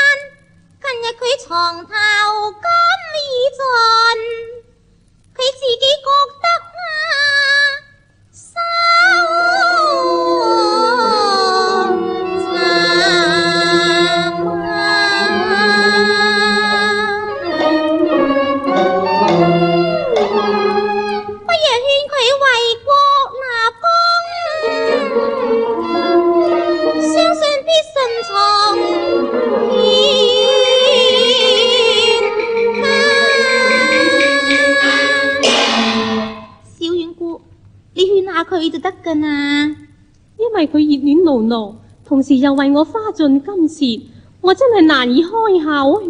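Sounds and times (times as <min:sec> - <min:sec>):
faint accompaniment: 0:00.0 - 0:46.0
woman singing opera: 0:08.4 - 0:18.3, 0:21.6 - 0:35.4.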